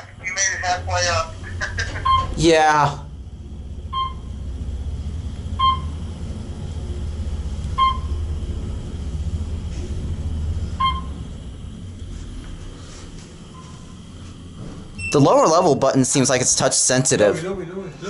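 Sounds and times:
elevator cab rumble: 0.0 - 18.0
short electronic beep: 3.9 - 4.3, 10.8 - 11.2.

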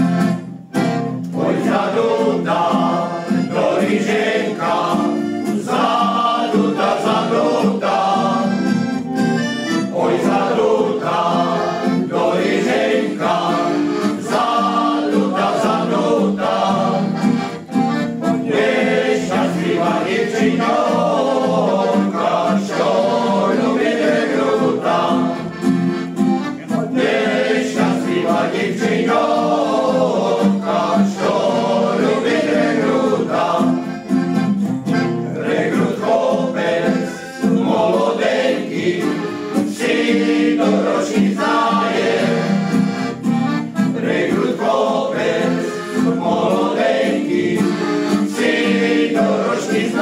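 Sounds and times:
accordion: 0.0 - 50.0
male choir singing: 1.4 - 8.8, 9.9 - 17.5, 18.3 - 25.7, 26.6 - 34.2, 35.2 - 43.0, 43.8 - 50.0.

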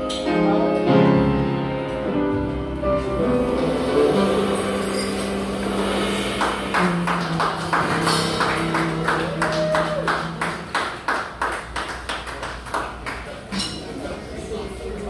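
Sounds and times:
bass: 0.0 - 11.8
drums tapping steady beat: 6.5 - 11.1.

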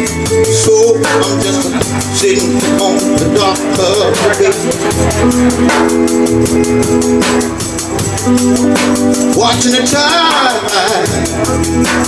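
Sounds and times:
drum kit with cymbal strokes: 0.0 - 12.0
electric guitar: 0.0 - 12.0
held chords: 0.0 - 12.0.

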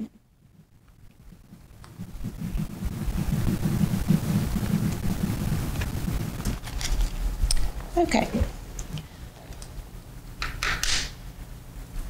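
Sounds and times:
low rumbling on microphone: 0.0 - 10.2.

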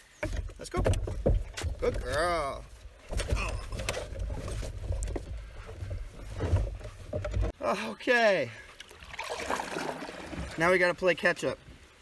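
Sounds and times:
low rumble of canoe hull: 0.0 - 7.6, 9.0 - 10.8
knocks of canoe hull: 0.2 - 7.6.

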